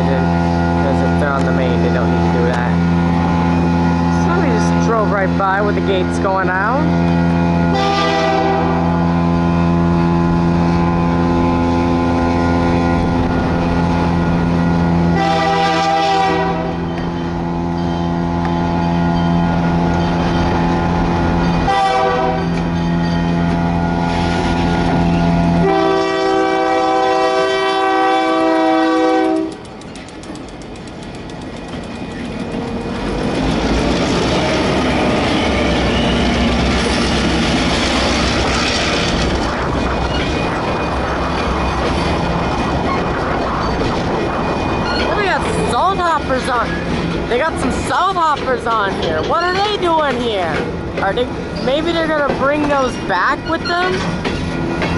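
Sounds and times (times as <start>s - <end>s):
train horn blasts: 0.0s - 5.0s, 6.0s - 19.1s, 20.7s - 29.7s
locomotive engine passing: 0.0s - 54.9s
wheels clattering over rail joints: 10.2s - 26.0s, 28.0s - 54.9s.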